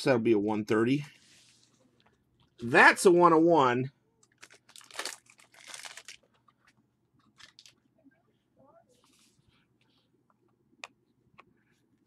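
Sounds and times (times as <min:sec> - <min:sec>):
cards and plastic sleeves rustling: 0:04.2 - 0:07.9.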